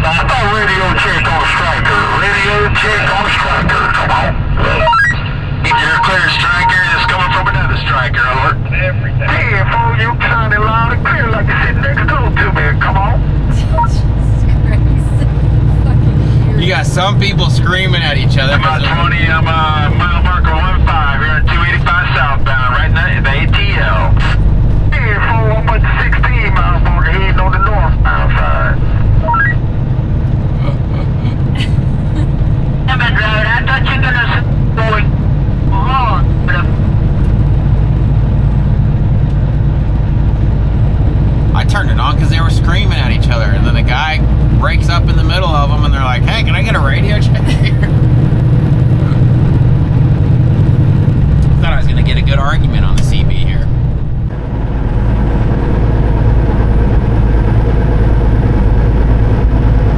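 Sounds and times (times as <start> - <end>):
voices talking: 0.0 - 29.7, 30.5 - 37.0, 41.5 - 48.3, 51.4 - 53.8
road noise: 0.0 - 59.9
truck engine drone: 0.0 - 59.9.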